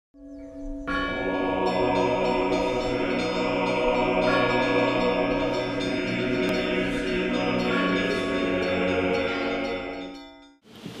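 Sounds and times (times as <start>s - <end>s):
church bells ringing: 0.2s - 10.6s.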